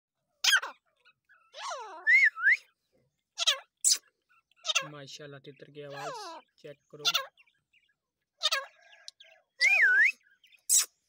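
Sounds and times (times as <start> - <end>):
partridge calling: 0.2 - 11.0.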